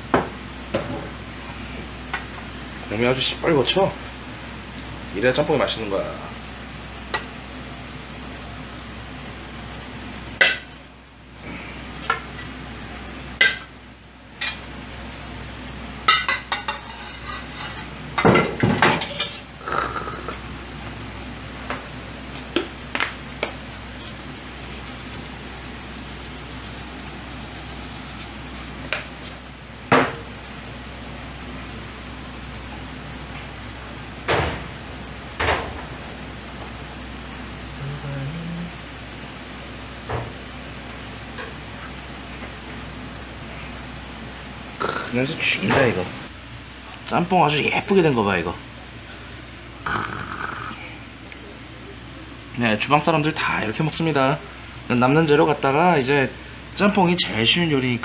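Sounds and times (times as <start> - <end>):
cookware and crockery clinking: 16.0 - 19.5.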